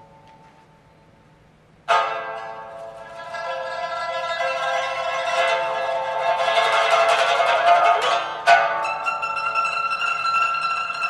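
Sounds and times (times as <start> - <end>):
pipa tremolo: 1.9 - 11.0.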